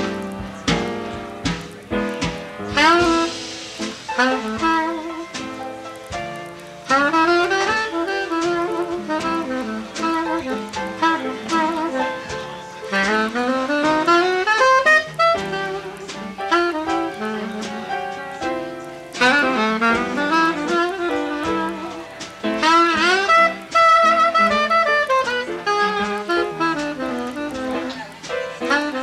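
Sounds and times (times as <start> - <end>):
drums: 0.0 - 29.0
piano: 0.0 - 29.0
soprano saxophone runs: 6.9 - 17.7, 19.2 - 28.0, 28.6 - 29.0.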